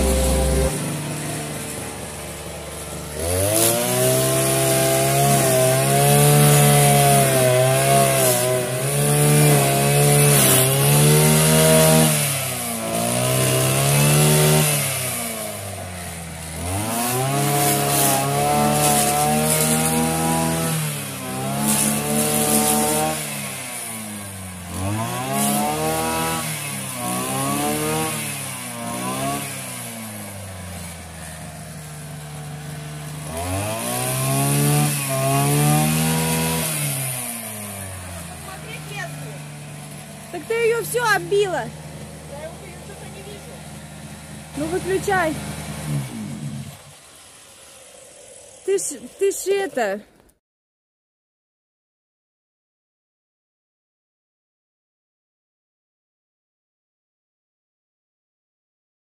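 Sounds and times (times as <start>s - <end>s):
string trimmer engine revving: 0.0s - 49.9s.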